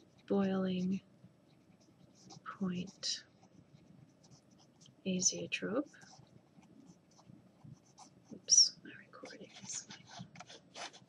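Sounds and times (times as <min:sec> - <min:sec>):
felt-tip pen scratching paper: 0:09.2 - 0:11.0.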